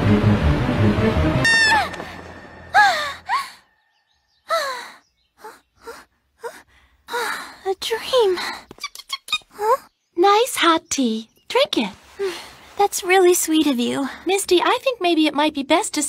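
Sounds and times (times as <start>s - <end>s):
background music: 0.0s - 3.4s
girl gasping and exclaiming: 4.5s - 8.6s, 9.5s - 9.9s.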